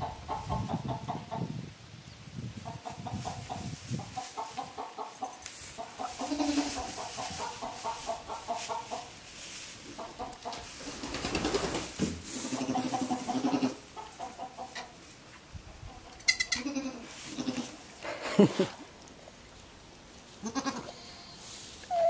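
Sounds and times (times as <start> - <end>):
chickens clucking: 0.0 - 1.6, 2.6 - 18.9, 21.8 - 22.0
goat kid bleating: 5.2 - 7.0, 12.4 - 13.8, 16.2 - 17.8, 20.4 - 22.0
hay rustling: 5.4 - 14.2, 17.0 - 18.7, 21.3 - 22.0.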